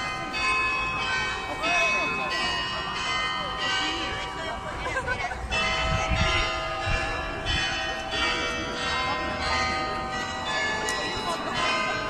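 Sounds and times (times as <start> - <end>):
church bells ringing: 0.0 - 12.0.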